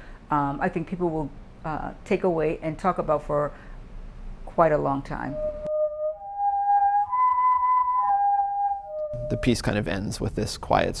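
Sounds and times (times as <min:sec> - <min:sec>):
whirly tube flute-like notes: 0:05.1 - 0:09.7.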